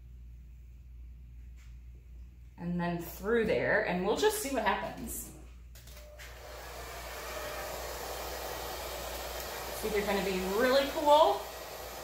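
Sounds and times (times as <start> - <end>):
hair dryer running: 5.9 - 12.0.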